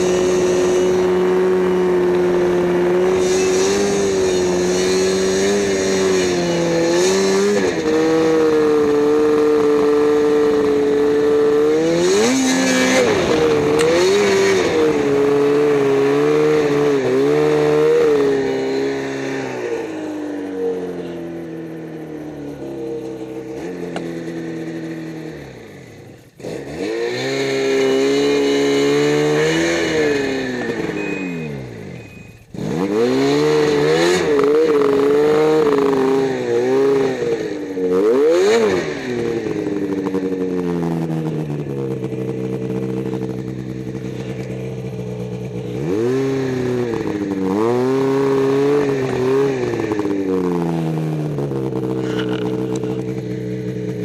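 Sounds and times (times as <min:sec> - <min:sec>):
snowmobile engine revving: 0:00.0 - 0:54.0.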